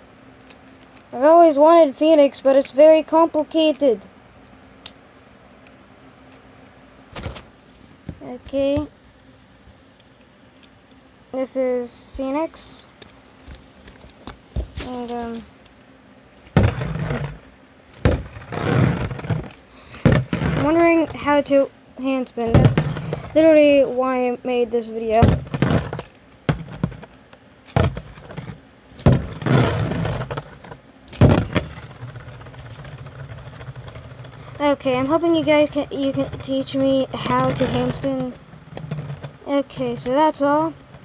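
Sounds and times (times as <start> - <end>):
person speaking: 1.1 - 4.1, 8.1 - 8.9, 11.3 - 13.0, 14.8 - 15.5, 20.4 - 25.4, 34.5 - 38.4, 39.3 - 40.8
spinning top whirring: 25.0 - 41.0
spinning top clattering on plastic: 25.1 - 41.0.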